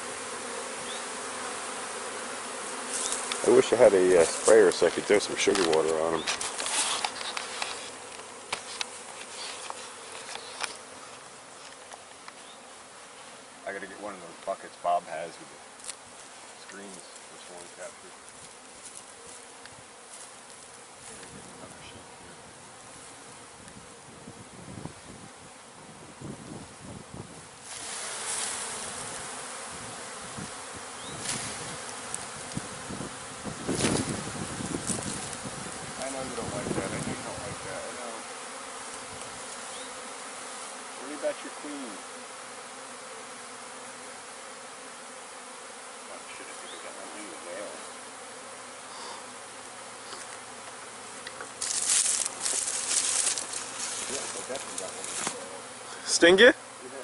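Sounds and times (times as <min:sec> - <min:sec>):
bee swarm humming: 0:00.0 - 0:57.0.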